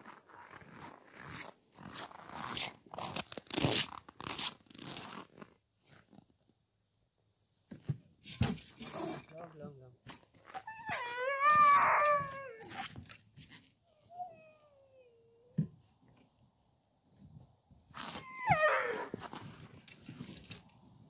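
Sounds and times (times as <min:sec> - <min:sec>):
dogs howling and whining: 0:10.4 - 0:13.0, 0:13.9 - 0:15.6, 0:17.6 - 0:19.3.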